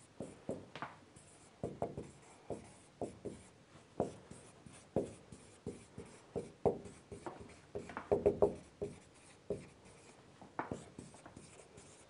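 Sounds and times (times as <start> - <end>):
marker writing on whiteboard: 0.0 - 12.0.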